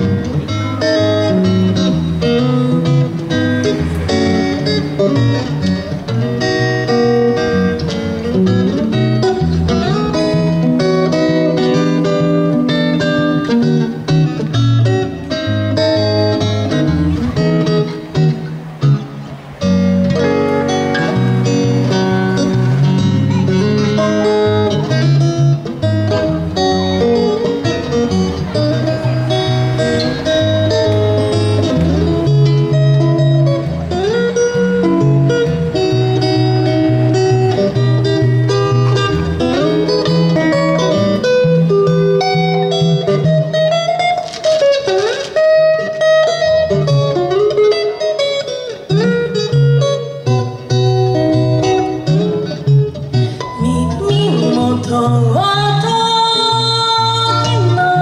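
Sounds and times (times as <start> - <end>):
electric guitar through amplifier: 0.0 - 58.0.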